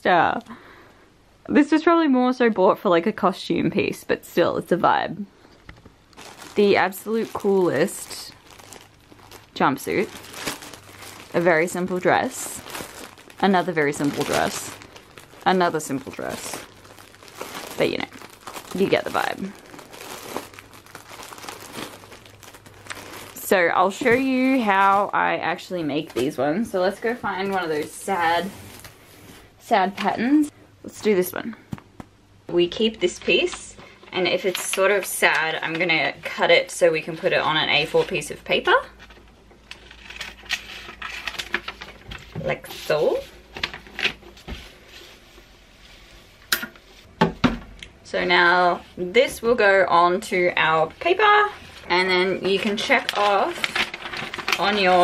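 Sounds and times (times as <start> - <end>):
plastic and paper crinkling: 5.4 - 30.2, 37.1 - 47.1, 49.2 - 55.0.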